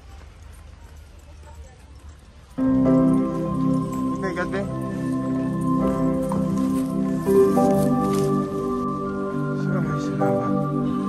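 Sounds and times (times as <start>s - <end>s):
footsteps in sandals on concrete: 0.0s - 9.1s.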